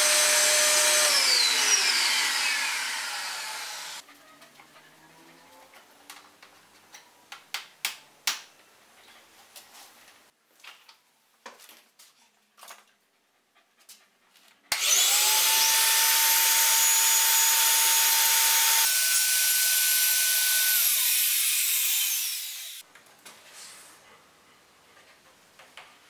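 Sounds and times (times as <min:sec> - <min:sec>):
power mortiser motor whining: 0:00.0 - 0:04.0, 0:14.8 - 0:21.2.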